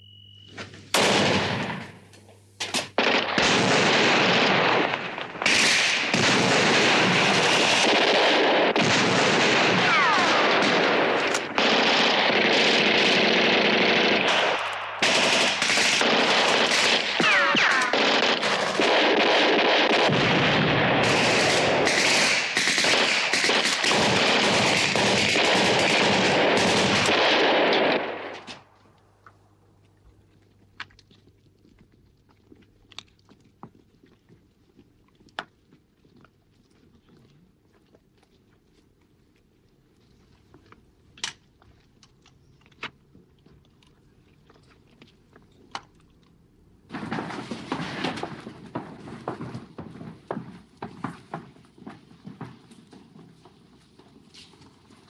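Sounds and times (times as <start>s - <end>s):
automatic gunfire: 1.0s - 1.9s, 2.9s - 28.5s.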